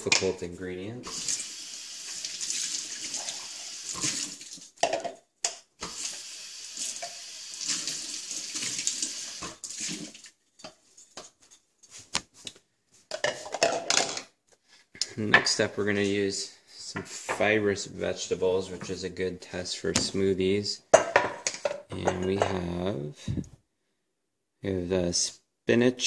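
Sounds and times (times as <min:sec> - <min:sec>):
plastic cups and dishes clinking: 0:04.8 - 0:05.6, 0:13.1 - 0:14.3.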